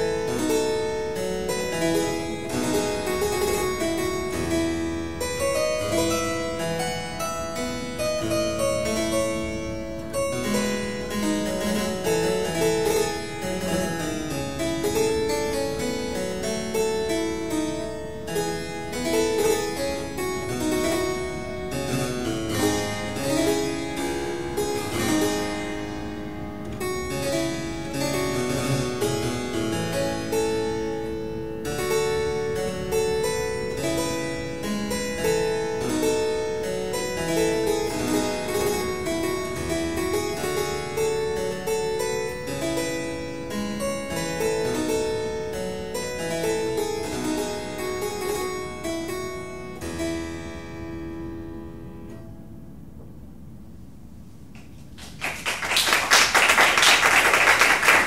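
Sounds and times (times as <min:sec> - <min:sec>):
harpsichord playing: 0:00.0 - 0:54.2.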